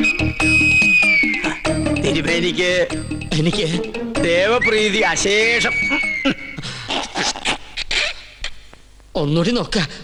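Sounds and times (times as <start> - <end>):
wavering cry-like sound: 0.0 - 1.8, 4.6 - 6.6.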